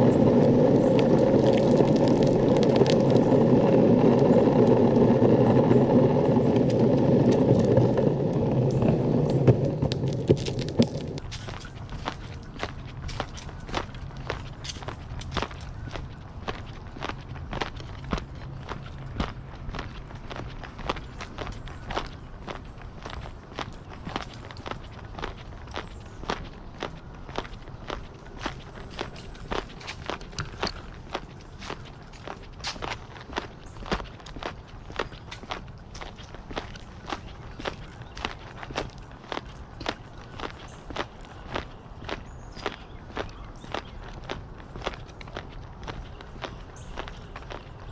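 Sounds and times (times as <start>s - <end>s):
footsteps on dirt path: 0.0s - 47.9s.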